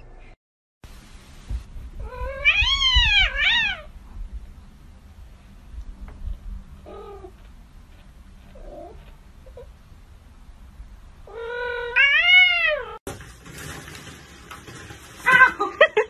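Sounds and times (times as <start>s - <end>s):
cat meowing: 2.0s - 3.9s, 11.2s - 13.0s.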